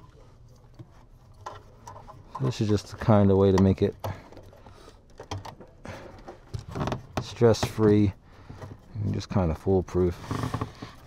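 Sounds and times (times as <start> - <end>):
small clicks and rustles: 0.0 - 11.0.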